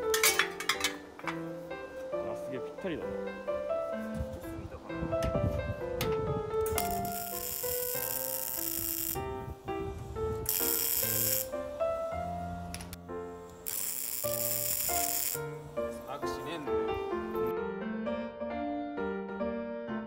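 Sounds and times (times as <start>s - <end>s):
background music: 0.0s - 20.0s
welder crackling hiss: 6.7s - 16.8s.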